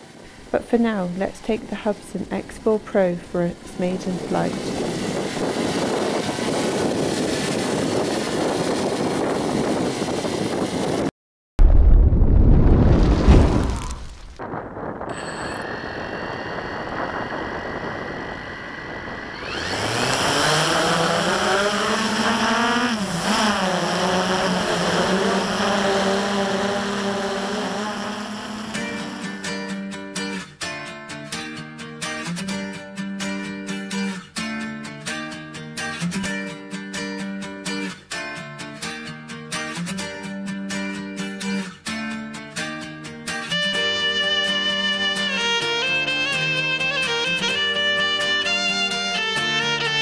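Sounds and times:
quadcopter propellers humming: 3.2s - 11.1s, 14.5s - 29.7s
loud low rumble: 11.6s - 19.6s.

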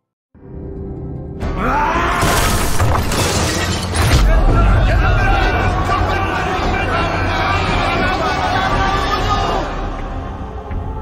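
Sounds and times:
film score music: 0.4s - 11.0s
things smashing and shattering: 2.2s - 4.6s.

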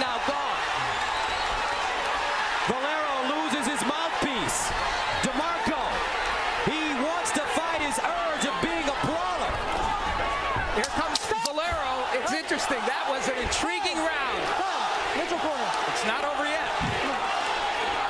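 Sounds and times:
crowd shouting and cheering: 0.0s - 18.0s.

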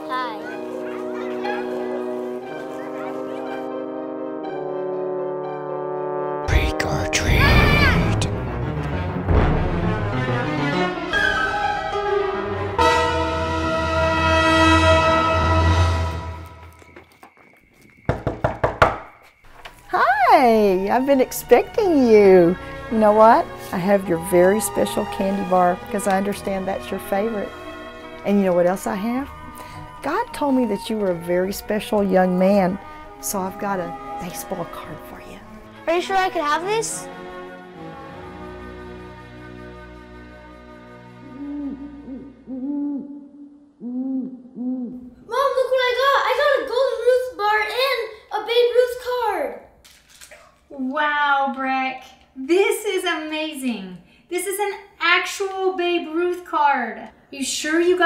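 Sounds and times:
child's excited voice: 0.0s - 2.0s, 7.2s - 8.2s, 45.3s - 49.7s, 50.7s - 52.1s
held music chord: 0.0s - 16.8s
knocking on wooden door: 18.1s - 19.1s
owl hooting: 41.2s - 45.1s.

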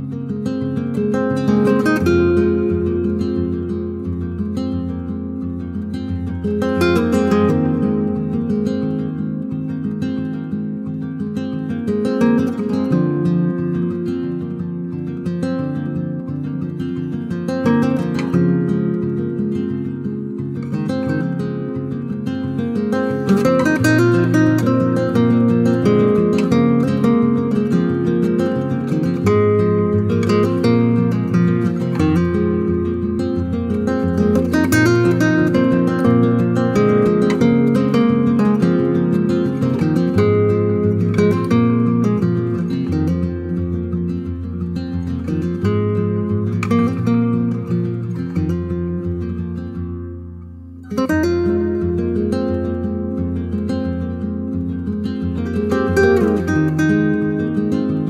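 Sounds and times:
acoustic guitar music: 0.0s - 58.0s.

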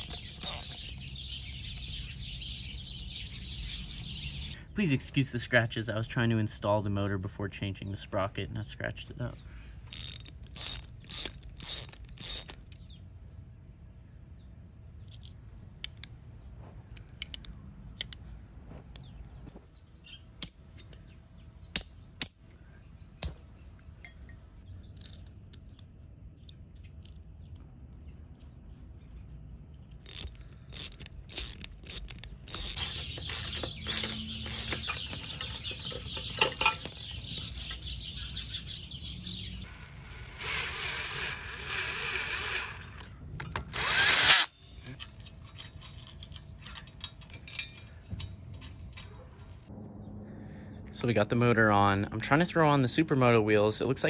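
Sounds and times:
tools clicking on metal: 0.0s - 1.9s, 9.9s - 12.8s, 29.8s - 37.5s, 42.1s - 49.6s.

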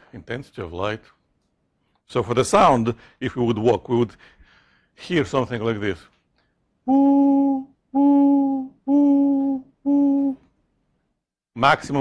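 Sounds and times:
man humming a steady note: 6.9s - 10.5s.

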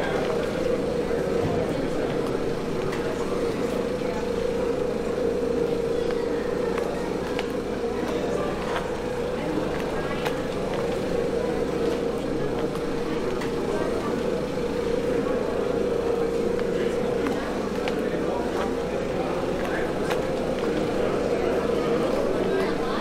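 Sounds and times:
constant hum: 0.0s - 23.0s
indistinct voices: 0.0s - 23.0s
traffic: 0.0s - 23.0s.

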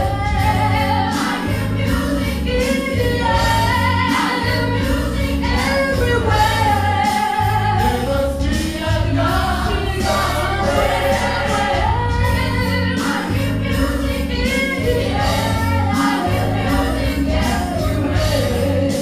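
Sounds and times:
pulsing bass line: 0.0s - 18.9s
gospel choir singing: 0.0s - 19.0s.

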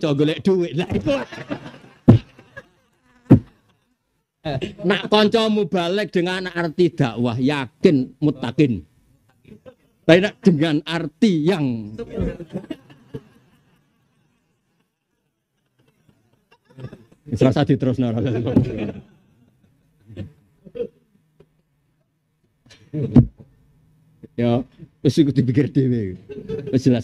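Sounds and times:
loud thumps: 2.0s - 2.4s, 3.3s - 3.6s.

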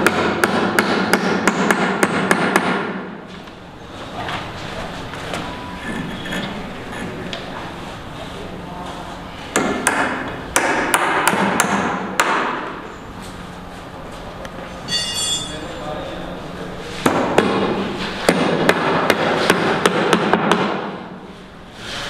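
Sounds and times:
hammer striking timber: 0.0s - 3.1s, 9.5s - 12.7s, 17.0s - 21.1s
ringing metal clink: 14.9s - 15.7s.

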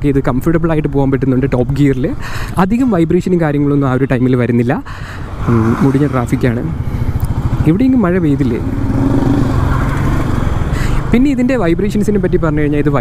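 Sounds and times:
man talking: 0.0s - 6.8s, 7.6s - 8.7s, 11.1s - 13.0s
motorcycle engine running: 6.3s - 10.8s.

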